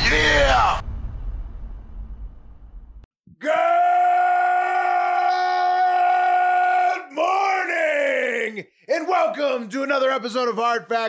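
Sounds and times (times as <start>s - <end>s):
crash: 0.0s - 3.1s
man yelling: 3.4s - 10.1s.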